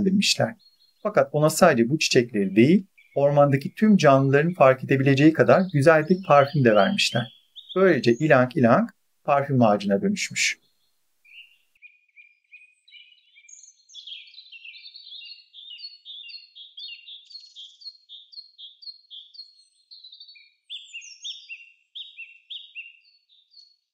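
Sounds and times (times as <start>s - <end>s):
birds chirping: 0.0s - 23.9s.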